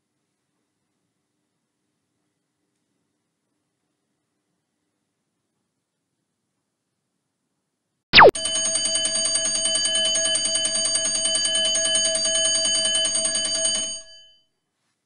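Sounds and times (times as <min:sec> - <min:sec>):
timer alarm swoop and ringing: 0:08.2 - 0:14.4.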